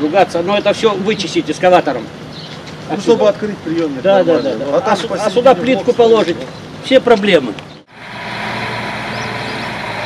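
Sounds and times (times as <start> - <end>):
diesel engine running: 7.7 - 10.0.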